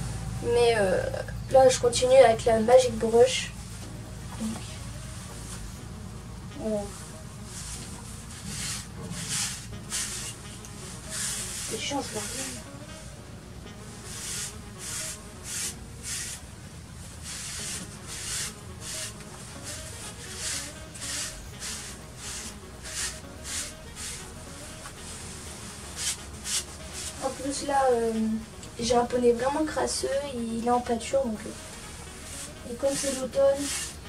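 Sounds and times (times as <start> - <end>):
brush strokes through pony coat: 3.1 - 5.8, 6.5 - 34.0.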